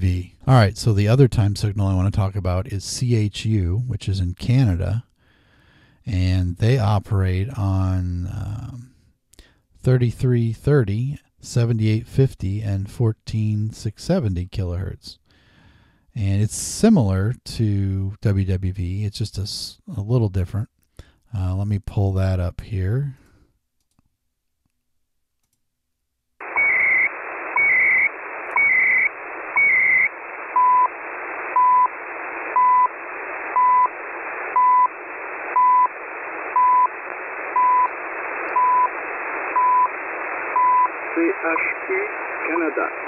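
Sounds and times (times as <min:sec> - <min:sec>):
radio hiss: 0:26.4 - 0:43.0
spoken time announcement: 0:40.7 - 0:43.0.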